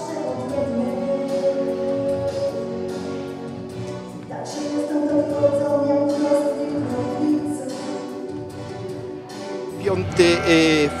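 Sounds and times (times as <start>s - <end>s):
woman singing into microphone: 0.0s - 2.9s, 4.2s - 8.4s
musical accompaniment: 0.0s - 11.0s.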